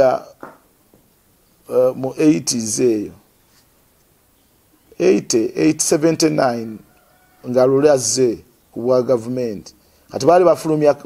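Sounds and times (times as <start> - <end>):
man speaking: 0.0 - 0.4, 1.7 - 3.2, 5.0 - 6.8, 7.4 - 11.0.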